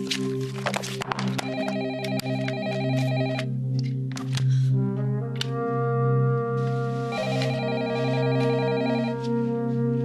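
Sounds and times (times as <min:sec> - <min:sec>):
papers rustling on a desk: 0:00.0 - 0:01.4
soft background music: 0:00.0 - 0:10.0
telephone ringing: 0:01.4 - 0:03.5, 0:07.2 - 0:09.2.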